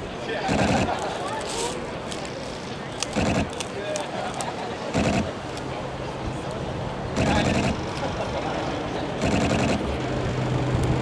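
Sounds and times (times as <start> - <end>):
people talking: 0.0 - 10.3
outdoor background noise: 0.0 - 11.0.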